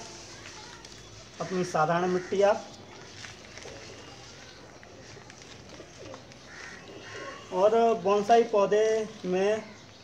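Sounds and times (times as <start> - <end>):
dry soil pouring: 0.0 - 6.5.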